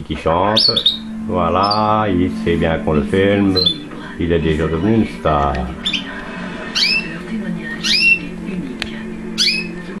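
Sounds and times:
canary chirping: 0:00.0 - 0:10.0
low steady hum: 0:00.0 - 0:10.0.

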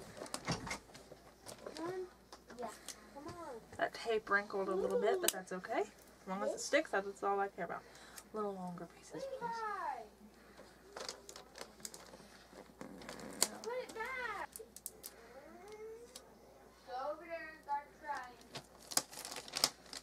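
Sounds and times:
paper rustling: 0:10.6 - 0:15.2, 0:18.1 - 0:20.0.

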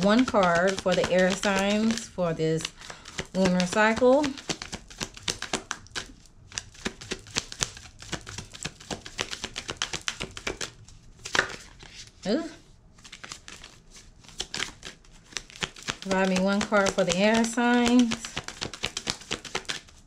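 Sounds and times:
cards being shuffled by hand: 0:00.0 - 0:20.0.

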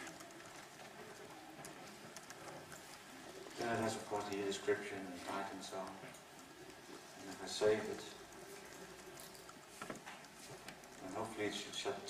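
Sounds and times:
laptop keyboard typing: 0:00.0 - 0:12.0.

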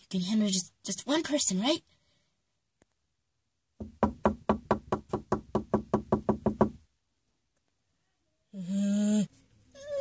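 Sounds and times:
rapid knocking on a door: 0:03.8 - 0:06.8.

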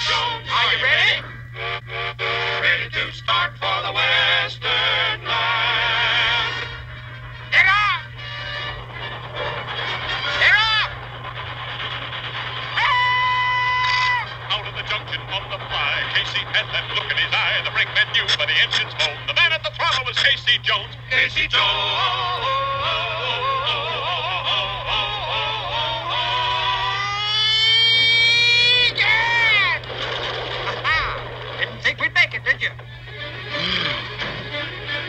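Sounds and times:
fast rhythmic patter: 0:07.6 - 0:26.8.

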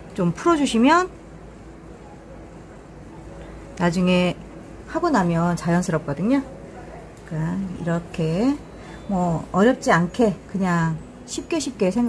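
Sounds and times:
low room hum and hiss: 0:00.0 - 0:12.0.

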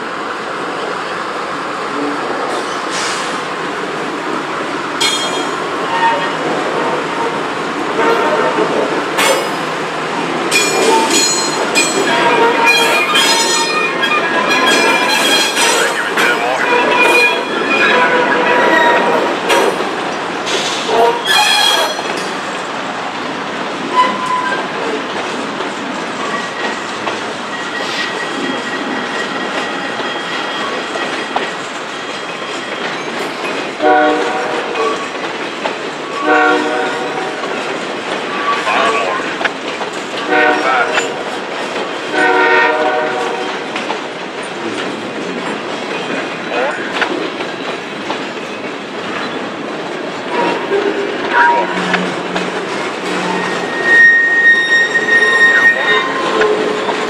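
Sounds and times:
freight train wheels clicking: 0:02.5 - 0:57.0
locomotive horn blasts: 0:08.0 - 0:08.7, 0:33.8 - 0:34.7, 0:36.2 - 0:37.4, 0:40.3 - 0:41.2, 0:42.1 - 0:43.5
wheel squeal: 0:21.2 - 0:22.3, 0:53.0 - 0:57.0.

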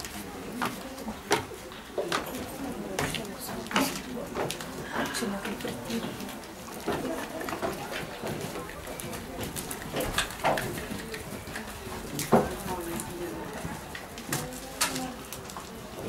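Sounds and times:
indistinct background voices: 0:00.0 - 0:16.0.

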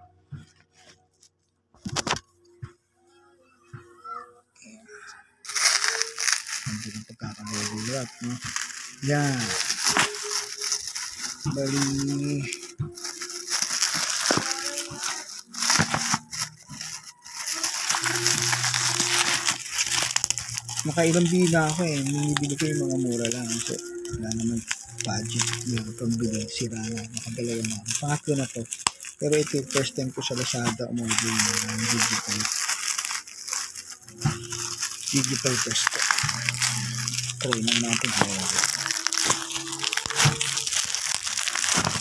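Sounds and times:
plastic bag and bubble wrap crinkling: 0:00.4 - 0:02.3, 0:04.0 - 0:42.0.

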